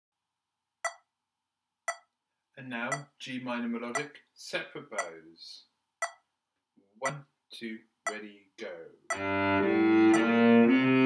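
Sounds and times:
metronome clicking: 0:02.9 - 0:03.1, 0:07.0 - 0:07.2, 0:09.1 - 0:09.3, 0:10.0 - 0:10.3.

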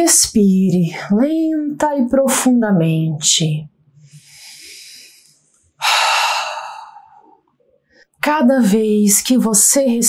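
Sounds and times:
woman breathing deeply: 0:04.1 - 0:07.4.

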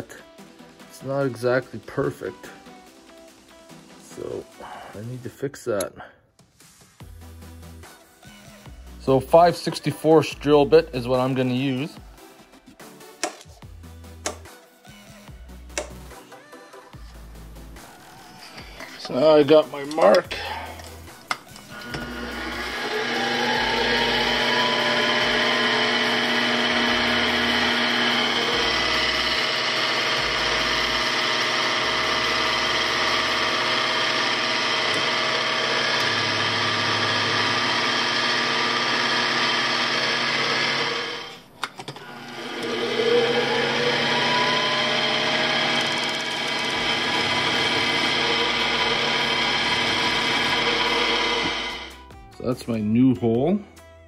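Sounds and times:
drill motor whining: 0:17.8 - 0:52.0.

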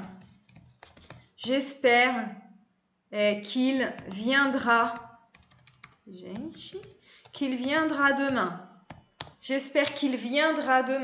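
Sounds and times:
keyboard typing clicks: 0:00.0 - 0:01.3, 0:04.9 - 0:09.4.

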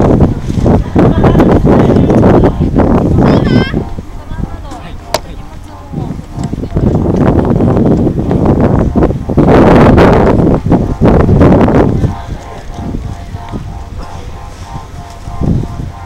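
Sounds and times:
faint steady hum: 0:00.0 - 0:16.0
wind buffeting microphone: 0:00.0 - 0:16.0.

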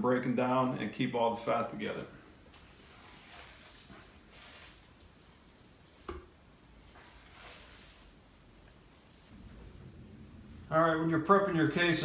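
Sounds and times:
hands squishing sausage mix: 0:06.8 - 0:09.4.

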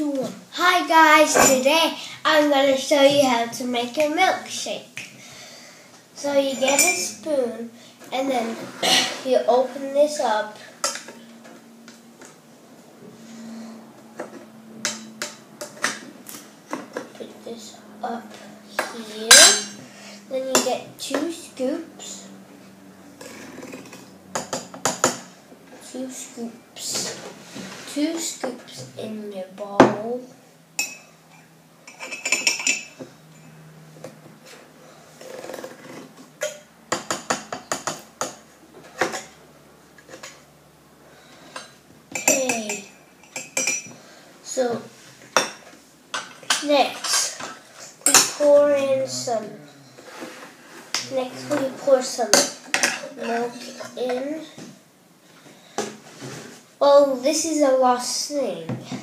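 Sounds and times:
faint steady hum: 0:00.0 - 0:59.0.

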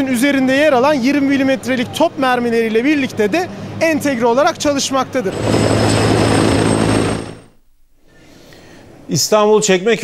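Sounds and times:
helicopter rotor and engine: 0:05.3 - 0:07.5.

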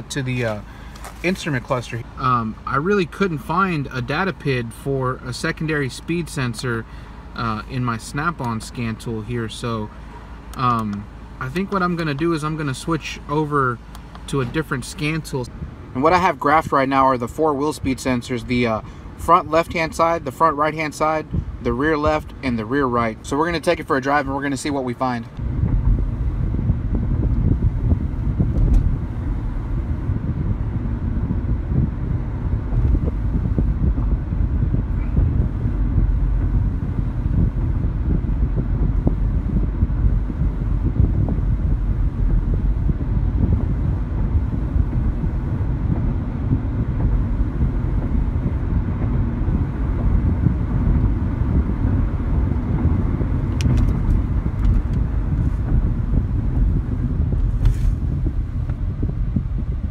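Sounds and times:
road and engine rumble: 0:00.0 - 0:59.9.

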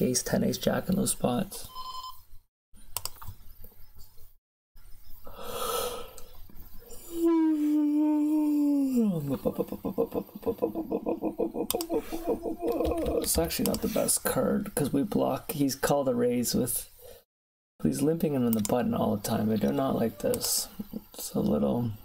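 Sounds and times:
man yawning: 0:07.0 - 0:09.6, 0:10.7 - 0:13.1.

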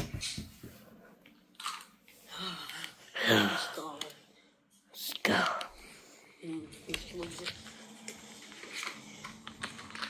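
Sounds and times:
person whispering: 0:04.9 - 0:07.8.

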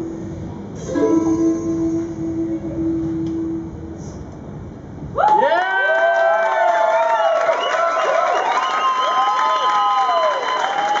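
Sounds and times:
audience cheering and whooping: 0:05.2 - 0:11.0
audience clapping: 0:05.3 - 0:11.0.

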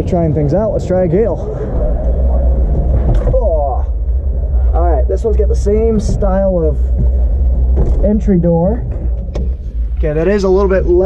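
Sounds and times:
low rumble: 0:00.0 - 0:11.0
man's voice: 0:10.0 - 0:11.0.

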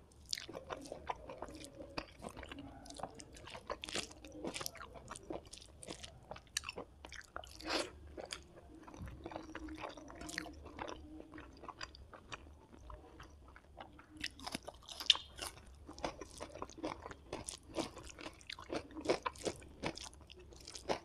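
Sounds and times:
crisp chewing crunches: 0:00.3 - 0:21.0.

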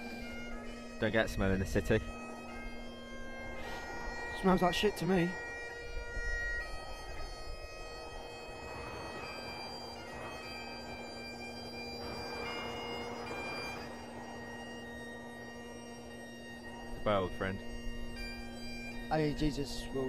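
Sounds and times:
bagpipe music: 0:00.0 - 0:20.0.

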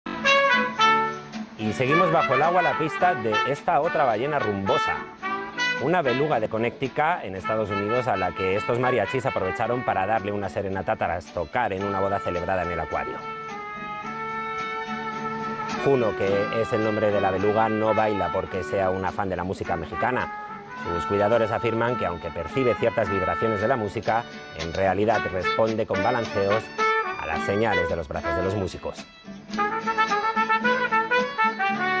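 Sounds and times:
guitar: 0:00.1 - 0:32.0
mariachi band playing: 0:00.1 - 0:32.0
trumpet melody: 0:00.1 - 0:32.0
person speaking: 0:01.6 - 0:05.1, 0:05.8 - 0:13.2, 0:15.8 - 0:20.3, 0:20.9 - 0:29.0.

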